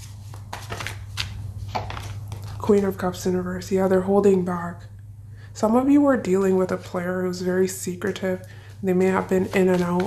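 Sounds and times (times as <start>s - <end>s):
cards shuffling: 0.0s - 2.6s, 9.4s - 10.0s
steady low hum: 0.0s - 10.0s.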